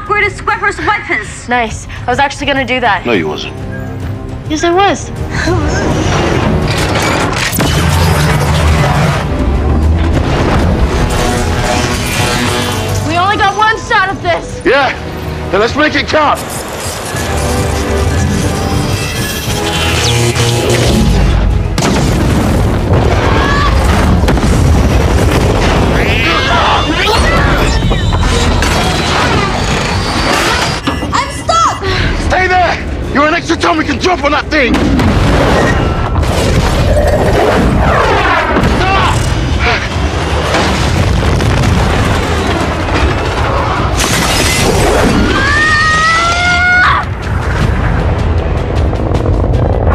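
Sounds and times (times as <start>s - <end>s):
orchestral music: 2.0s - 29.6s
booming hits: 6.0s - 12.7s, 20.3s - 30.8s, 34.7s - 45.5s
rocket thruster rumble: 20.3s - 30.3s, 47.0s - 49.9s.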